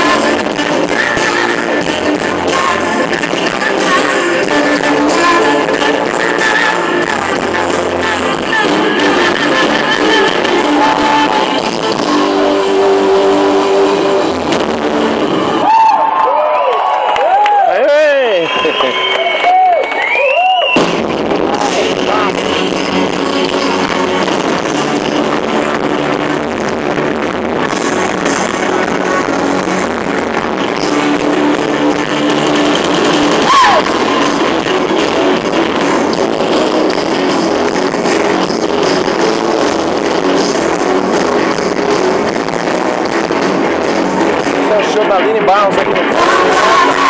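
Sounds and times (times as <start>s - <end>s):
live band playing rock music: 0.0s - 15.8s, 20.7s - 47.0s.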